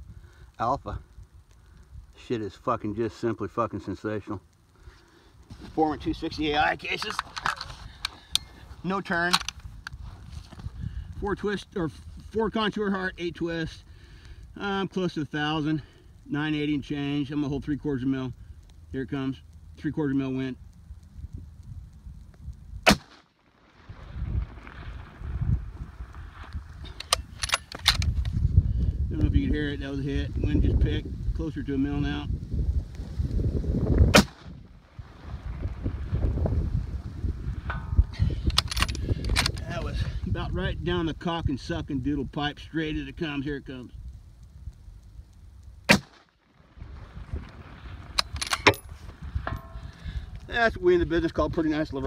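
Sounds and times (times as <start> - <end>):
wind rumbling on microphone: 0.0 - 3.2, 4.6 - 52.0
rifle shot: 22.8 - 23.3, 34.1 - 34.6, 45.9 - 46.3
sharp clicks: 26.6 - 28.4, 37.5 - 39.7, 48.1 - 50.5.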